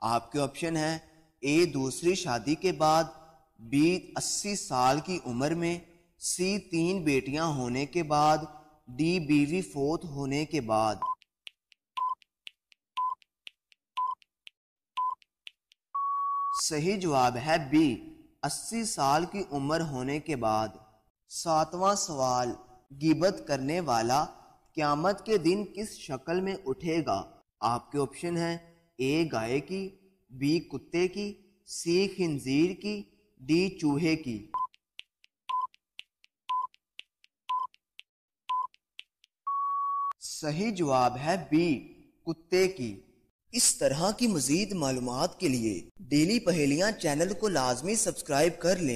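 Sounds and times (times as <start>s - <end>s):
short timer beeps: 12.0s - 12.3s, 13.0s - 13.3s, 14.0s - 14.3s, 15.0s - 15.3s, 16.0s - 16.6s, 35.5s - 35.8s, 36.5s - 36.8s, 37.5s - 37.8s, 38.5s - 38.8s.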